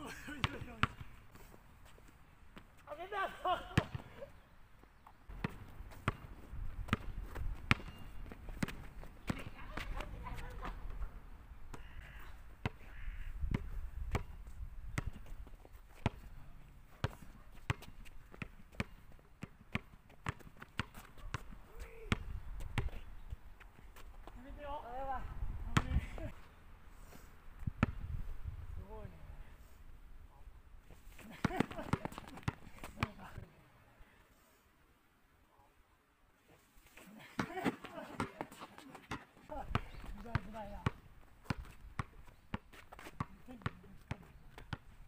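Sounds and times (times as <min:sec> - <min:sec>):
basketball dribble thuds: 0:00.4 - 0:01.1, 0:06.9 - 0:10.0, 0:37.4 - 0:44.8.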